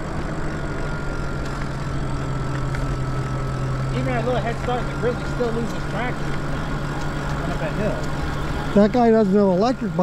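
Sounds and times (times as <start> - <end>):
electric bike motor humming: 0.0 - 10.0
wind: 0.0 - 10.0.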